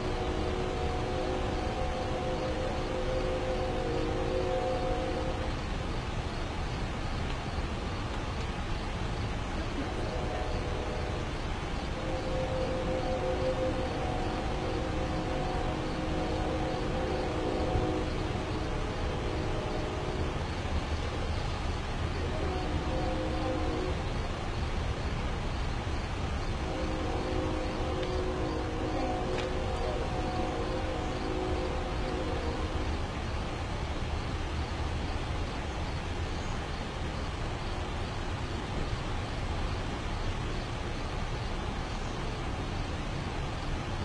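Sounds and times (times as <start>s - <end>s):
distant horn blasts: 0.0s - 5.9s, 9.6s - 21.0s, 22.1s - 24.4s, 26.5s - 33.3s
low outdoor rumble: 0.0s - 44.0s.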